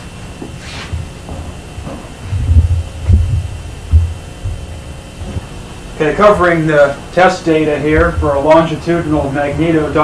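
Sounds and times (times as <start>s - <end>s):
steady low hum: 0.0s - 10.0s
dull low thuds: 0.4s - 5.7s, 7.8s - 10.0s.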